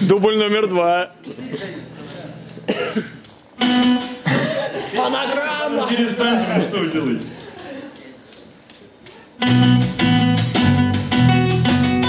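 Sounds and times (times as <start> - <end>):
quiet stage sounds: 0.0 - 12.0.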